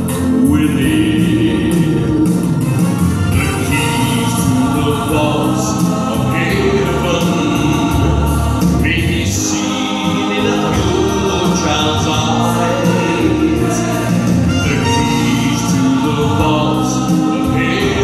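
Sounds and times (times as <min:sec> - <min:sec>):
musical accompaniment: 0:00.0 - 0:18.0
man singing into microphone: 0:00.1 - 0:02.4, 0:03.3 - 0:18.0.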